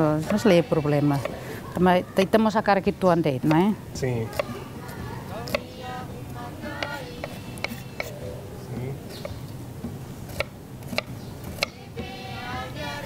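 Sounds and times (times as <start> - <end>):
faint background music: 0.0 - 9.3.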